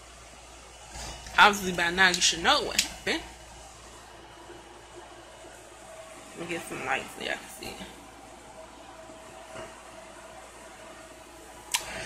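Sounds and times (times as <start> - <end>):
air conditioner hum: 0.0 - 12.0.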